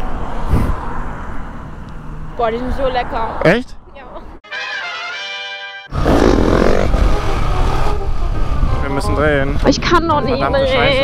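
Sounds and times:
rushing air: 0.0s - 1.6s
held musical chord: 4.4s - 5.9s.

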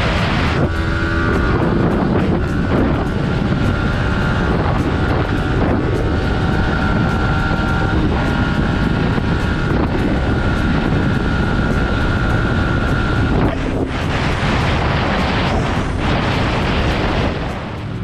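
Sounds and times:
steady high tone: 0.0s - 16.4s
motorcycle engine at high revs: 0.0s - 18.0s
wind noise on microphone: 0.0s - 18.0s.

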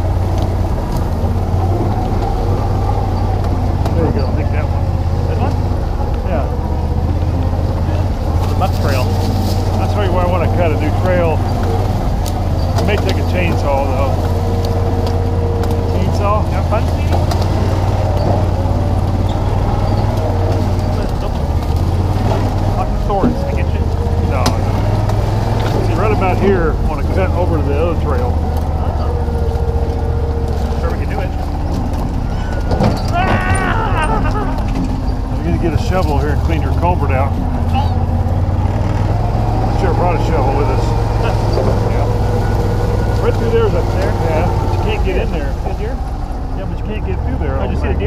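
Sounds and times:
utility vehicle engine droning: 0.0s - 48.0s.

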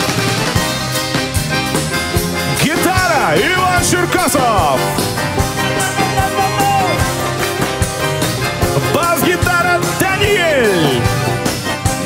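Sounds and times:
accordion: 0.0s - 12.0s
bass guitar: 0.0s - 12.0s
acoustic guitar strumming: 0.8s - 12.0s
drum strikes: 4.9s - 11.1s.

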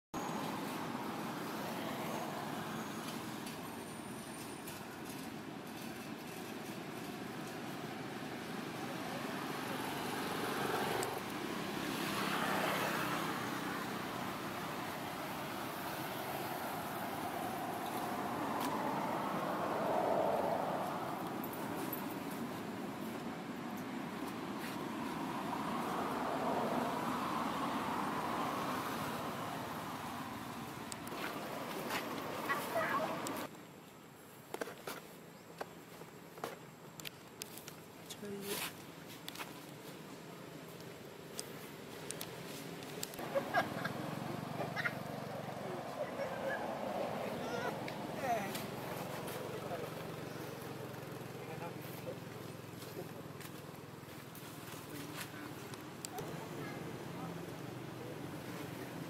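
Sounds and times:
road traffic: 0.0s - 59.0s.

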